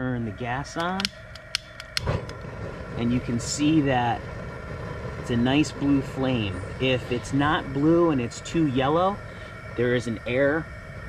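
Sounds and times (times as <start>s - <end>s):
propane burner gas jet rushing: 0.0s - 11.0s
sharp clicks: 0.8s - 2.4s.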